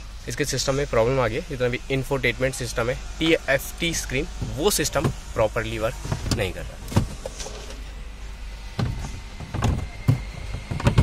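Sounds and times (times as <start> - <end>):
plastic parts clicking and knocking: 9.5 - 11.0.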